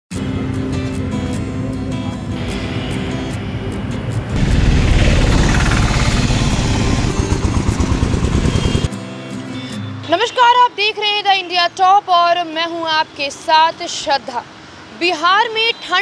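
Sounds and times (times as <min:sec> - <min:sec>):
vehicle engine running: 0:04.3 - 0:08.9.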